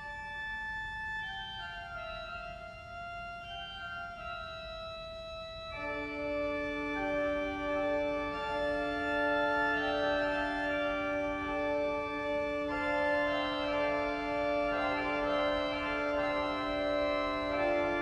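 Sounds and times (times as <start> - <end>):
pipe organ chords: 0.0 - 18.0.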